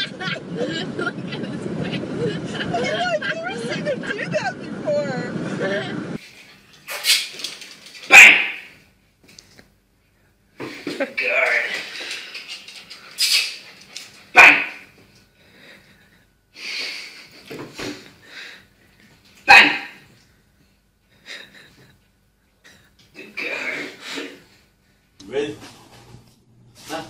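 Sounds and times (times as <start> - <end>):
small dog barking: 8.1 - 8.7, 14.3 - 14.9, 19.5 - 20.0.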